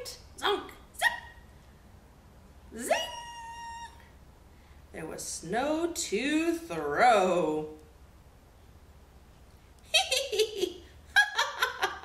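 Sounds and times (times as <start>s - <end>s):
faint low hum: 0.0s - 12.0s
woman giggling: 9.9s - 12.0s.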